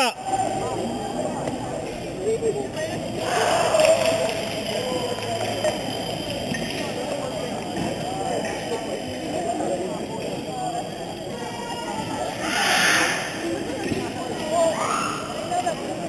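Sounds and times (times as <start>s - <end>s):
chatter of many voices: 0.0s - 16.0s.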